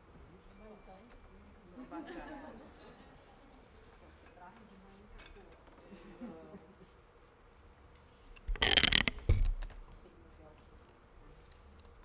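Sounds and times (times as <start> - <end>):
faint indistinct voices: 0.0 - 7.1, 9.9 - 12.0.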